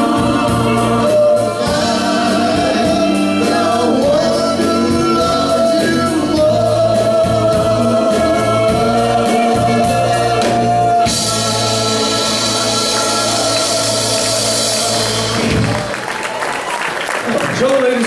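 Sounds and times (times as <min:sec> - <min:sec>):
vocal group singing held chord: 0:00.0 - 0:15.8
bass and drums: 0:00.0 - 0:16.0.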